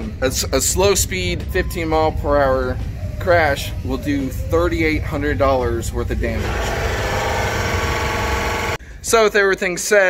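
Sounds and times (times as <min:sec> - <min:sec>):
steady mechanical drone: 0:00.8 - 0:08.8.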